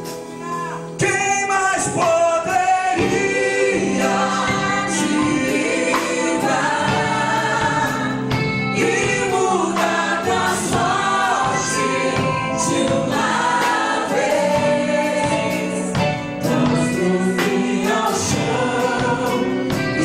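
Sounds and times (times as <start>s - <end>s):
keyboard: 0.0s - 20.0s
man singing lead: 0.5s - 3.2s.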